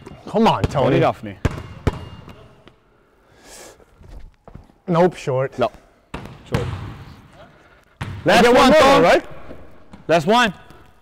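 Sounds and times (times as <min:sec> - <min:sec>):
basketball bouncing on court: 0:00.0 - 0:02.6, 0:06.1 - 0:07.1, 0:08.0 - 0:08.5.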